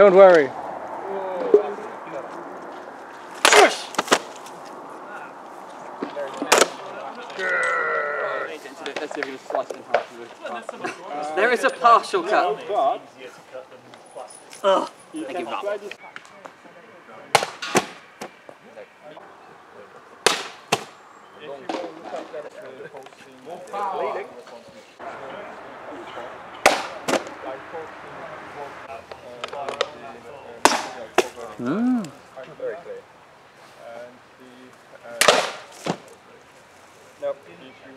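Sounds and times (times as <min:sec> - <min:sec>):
outdoor background: 0:00.0 - 0:37.9
voices talking: 0:00.0 - 0:37.9
sharp cracks: 0:03.3 - 0:04.8, 0:05.8 - 0:07.7, 0:17.3 - 0:18.4, 0:20.2 - 0:21.0, 0:26.6 - 0:27.4, 0:30.6 - 0:32.2, 0:35.2 - 0:36.1.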